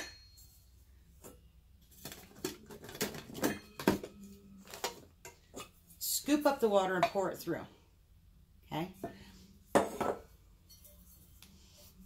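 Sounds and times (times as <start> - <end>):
metal cookware clinking: 0.0 - 0.6, 2.8 - 5.8.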